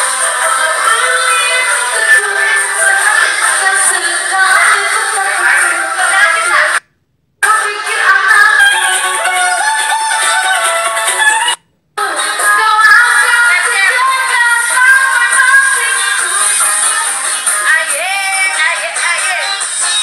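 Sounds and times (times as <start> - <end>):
backing track music: 0.0 - 6.8, 7.4 - 20.0
women singing karaoke: 0.0 - 6.8, 7.4 - 20.0.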